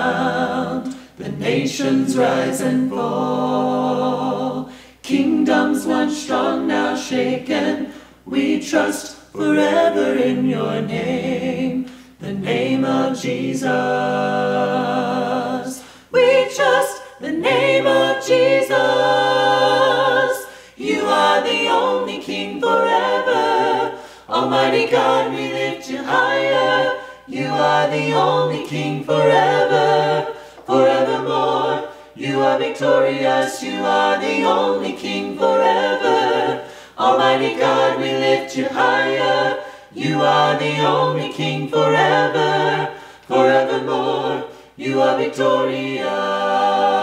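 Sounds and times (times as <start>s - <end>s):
mixed group singing a cappella: 0.0s - 47.0s.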